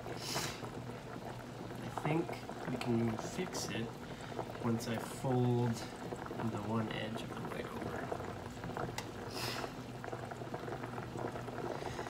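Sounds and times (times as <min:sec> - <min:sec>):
water boiling and bubbling: 0:00.0 - 0:12.0.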